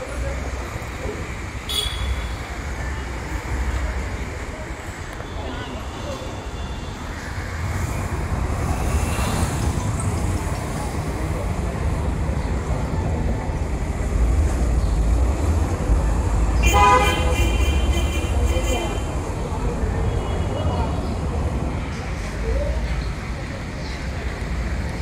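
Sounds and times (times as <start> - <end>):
street traffic rumbling: 0.0 - 25.0
vehicle horn: 1.7 - 2.3, 16.6 - 19.1.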